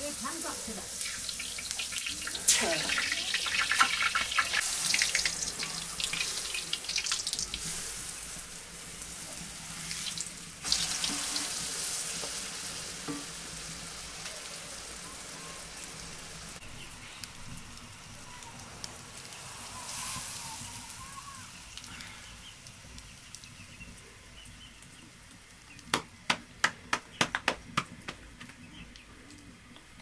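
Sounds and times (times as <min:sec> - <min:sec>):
flatbread sizzling in hot oil: 0:00.0 - 0:26.0
small crackles: 0:16.6 - 0:26.2, 0:27.1 - 0:30.0.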